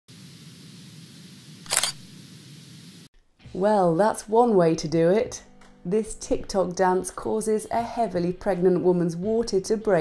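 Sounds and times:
camera shutter sound effect: 1.6 - 2.1.

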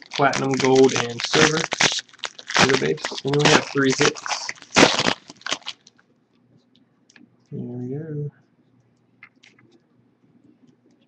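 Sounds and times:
foil wrapper crinkling: 0.0 - 6.0.

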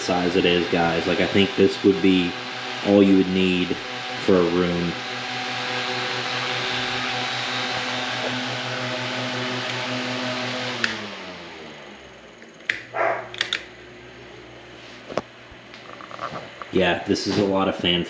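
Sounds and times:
electric fan running: 0.0 - 18.0
fan switch click: 10.8 - 11.0, 12.6 - 13.7.

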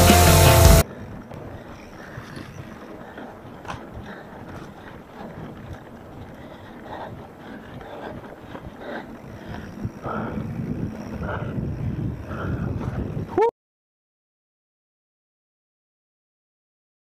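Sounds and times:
bike tyres rolling on dirt: 0.0 - 13.4
wind buffeting microphone: 0.8 - 13.4.

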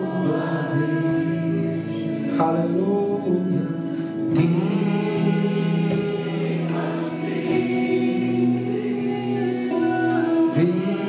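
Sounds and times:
women singing together: 0.0 - 2.8, 4.3 - 11.0
electric guitar: 0.0 - 11.0.

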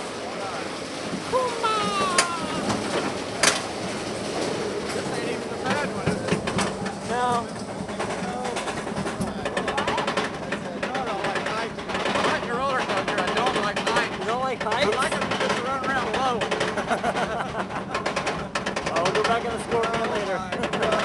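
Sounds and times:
roller coaster lift chain clatter: 0.0 - 21.0.

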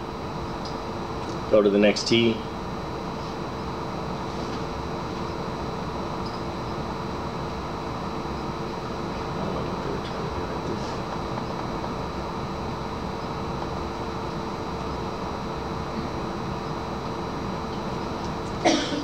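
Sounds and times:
constant low hum: 0.0 - 19.0
faint high whine: 0.0 - 19.0
fan noise: 0.0 - 19.0.

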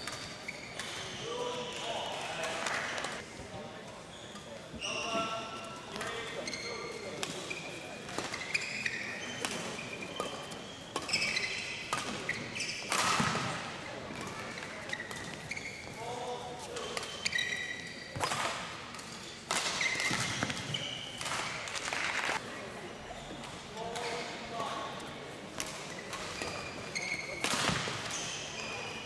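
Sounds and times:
court shoes squeaking: 0.0 - 29.0.

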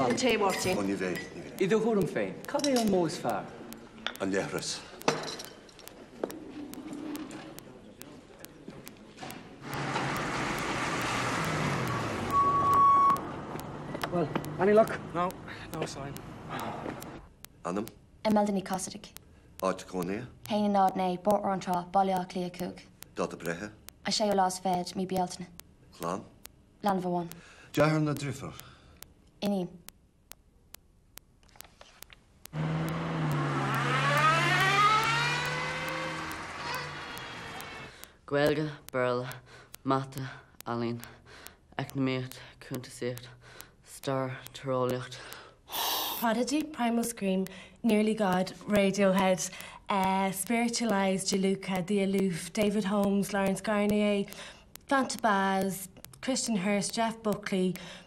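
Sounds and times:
car engine and tyre noise: 32.6 - 37.9.

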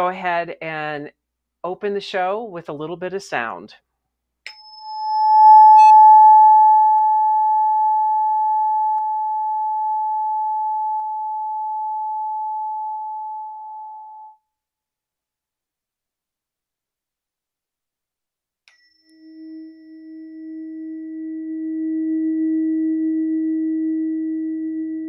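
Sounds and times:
tuning fork ringing: 4.5 - 14.4, 18.7 - 25.0
second lower tone: 5.0 - 14.4.

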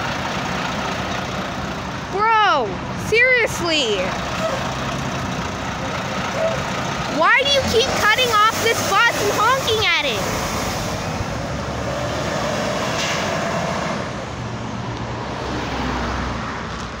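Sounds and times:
bus engine rumble driving off: 0.0 - 17.0.

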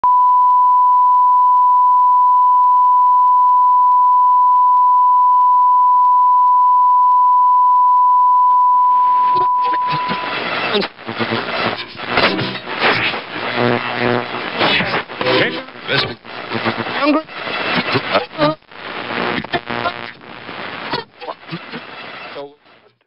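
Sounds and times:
steady test tone: 5.1 - 18.5
choppy broken-up noise: 9.3 - 22.4.

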